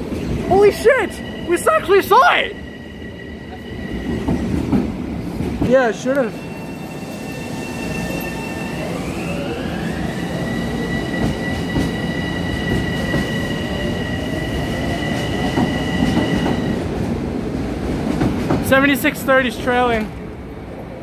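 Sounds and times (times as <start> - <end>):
train wheels rumbling on rail: 0.0 - 20.9.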